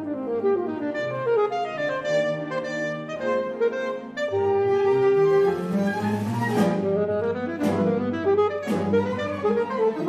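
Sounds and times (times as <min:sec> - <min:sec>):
alto saxophone melody: 0:00.0 - 0:10.0
string orchestra accompaniment: 0:00.0 - 0:10.0.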